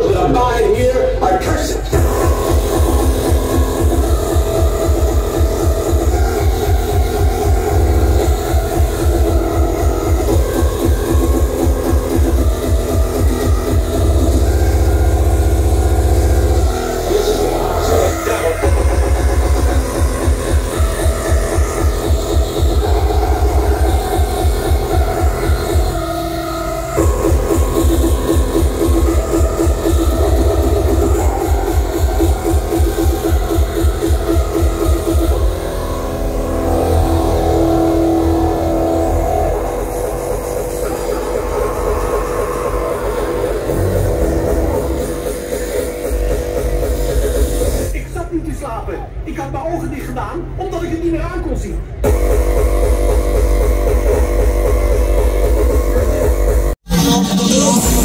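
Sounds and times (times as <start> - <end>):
hardcore techno over sound system: 0.0 - 58.0.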